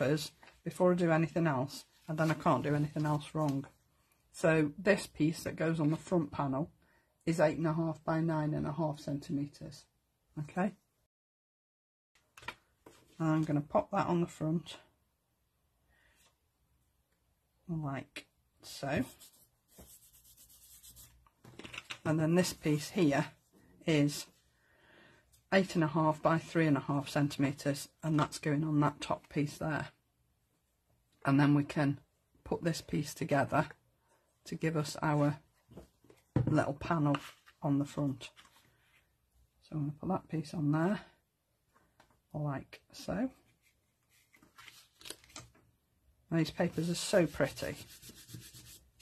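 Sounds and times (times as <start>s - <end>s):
paper rustling under hands: 0.0s - 3.7s, 18.9s - 22.9s, 43.4s - 45.7s
soft brushes: 18.7s - 21.3s, 46.5s - 49.0s
fingers rubbing paper: 19.0s - 21.2s, 46.8s - 49.0s
scratchy paper handling: 19.0s - 22.6s, 43.5s - 45.5s, 46.6s - 49.0s.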